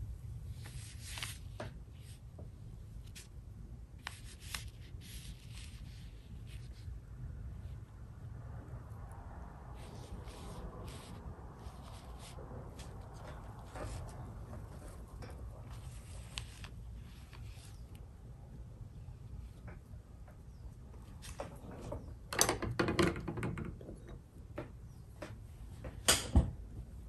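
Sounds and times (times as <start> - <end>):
brush scratchy strokes on paper: 0.5 - 2.2, 4.0 - 7.0, 9.7 - 18.0
brush rubbing on paper: 9.7 - 15.0.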